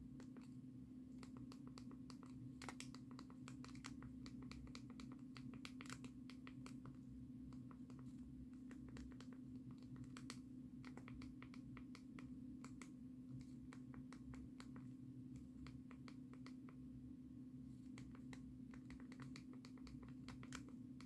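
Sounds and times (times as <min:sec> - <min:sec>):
steady low hum: 0:00.0 - 0:21.0
small clicks and taps: 0:00.1 - 0:16.8, 0:17.8 - 0:21.0.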